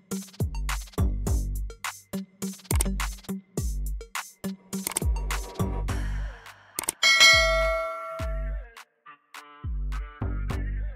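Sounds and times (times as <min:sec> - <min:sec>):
beat music with deep bass: 0:00.0 - 0:06.6, 0:07.2 - 0:08.7
bright bell chime: 0:07.0 - 0:08.4.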